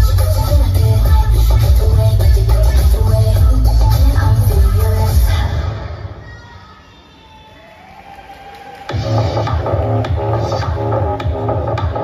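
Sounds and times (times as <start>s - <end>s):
music with heavy beat: 0.0s - 5.8s, 8.8s - 12.0s
dance music playback: 0.0s - 12.0s.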